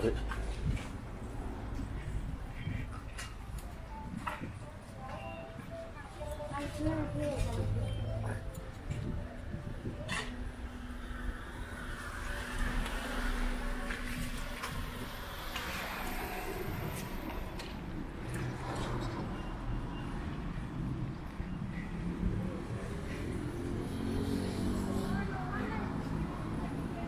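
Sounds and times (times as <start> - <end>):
traffic rumble: 0.0 - 27.0
car and truck engines humming: 7.1 - 27.0.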